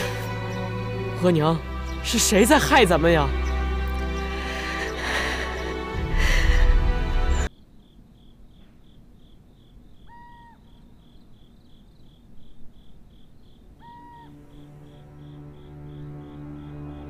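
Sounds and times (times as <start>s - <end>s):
low sustained music tone: 0.0s - 7.6s, 12.5s - 17.0s
cricket chirping: 7.1s - 17.0s.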